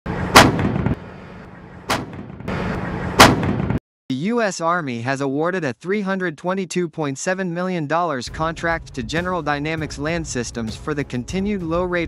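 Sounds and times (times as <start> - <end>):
tank cannon shots: 0.1 - 3.8.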